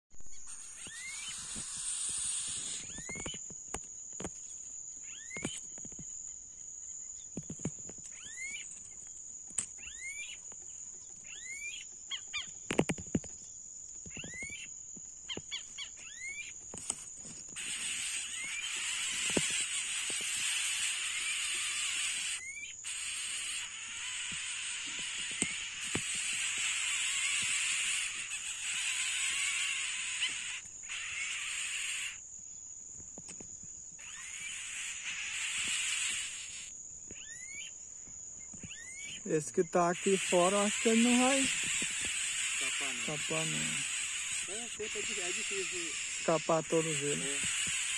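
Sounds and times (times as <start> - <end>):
high-pitched insect tone: 0.2 - 47.9
hissing insect: 0.2 - 47.9
rising insect chirps: 0.2 - 47.9.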